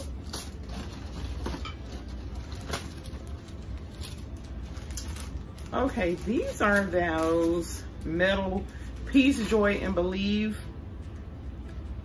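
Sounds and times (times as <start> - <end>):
plastic packaging crinkling: 0.0 - 10.2
low steady hum: 0.0 - 12.0.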